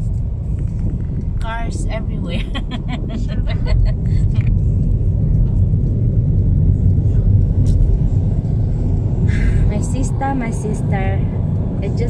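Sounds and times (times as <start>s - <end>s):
car cabin rumble: 0.0s - 12.0s
laughter: 2.4s - 4.4s.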